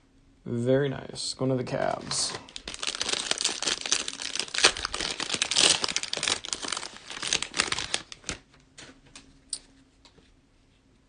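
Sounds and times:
cellophane wrapper crinkling: 1.9 - 8.5.

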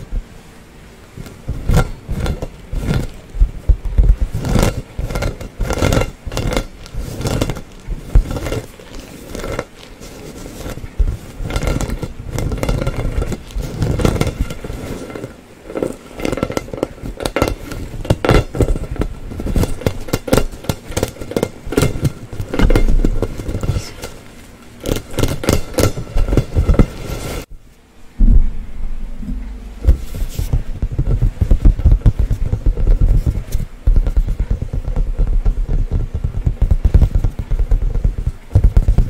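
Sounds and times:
fingernails tapping on plastic ball: 1.5 - 24.2, 24.8 - 27.2, 29.8 - 39.0.

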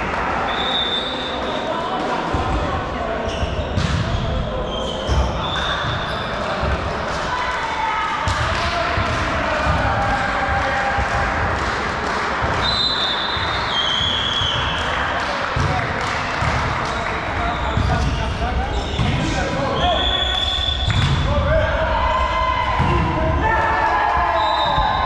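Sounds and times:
players' voices echoing: 0.0 - 25.0
high squeals: 17.4 - 21.0.

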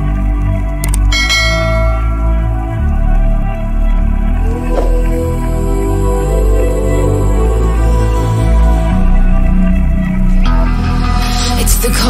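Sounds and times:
background music: 0.0 - 12.0
bright bell chime: 1.1 - 2.6.

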